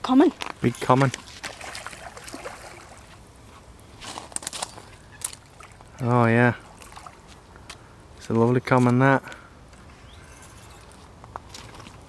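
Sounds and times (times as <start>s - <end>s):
water sloshing: 0.6s - 7.5s
small splashes: 0.7s - 3.2s, 5.2s - 7.4s.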